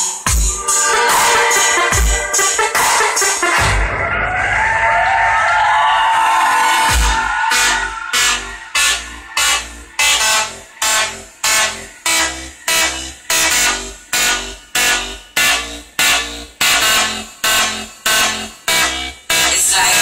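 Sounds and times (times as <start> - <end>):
electronic music with heavy bass: 0.0 - 20.0.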